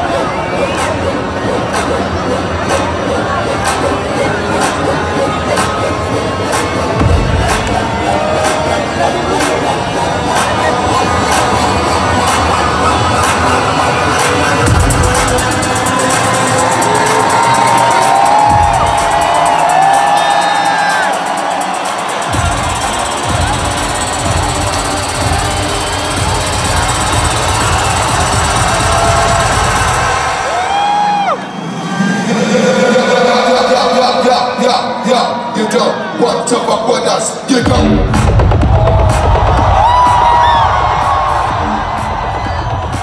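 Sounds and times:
crowd cheering: 0.0s - 43.0s
electronic dance music: 0.0s - 43.0s.

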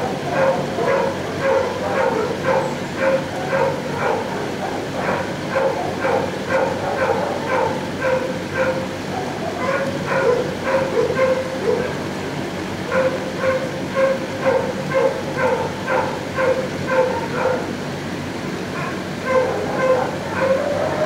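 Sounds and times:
dogs barking: 0.0s - 21.0s.

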